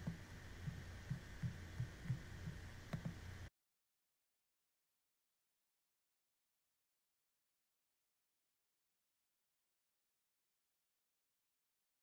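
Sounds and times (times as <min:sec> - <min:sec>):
faint low hum: 0:00.0 - 0:03.5
soft low thumps: 0:00.0 - 0:03.5.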